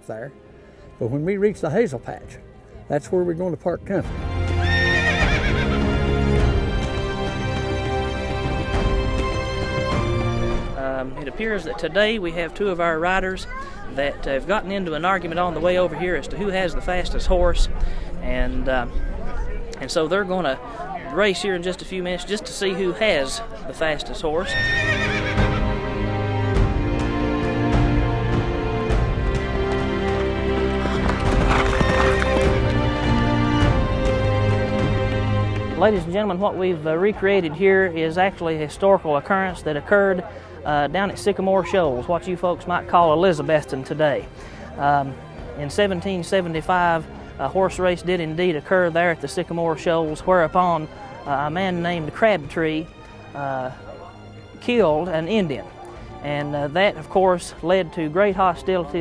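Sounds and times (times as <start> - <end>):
music with long held notes: 0.0 - 11.3, 24.3 - 37.8
music: 0.0 - 59.0
horse whinnying: 4.5 - 6.1, 24.4 - 25.7, 30.7 - 32.7
horses galloping hoofbeats: 28.9 - 35.2.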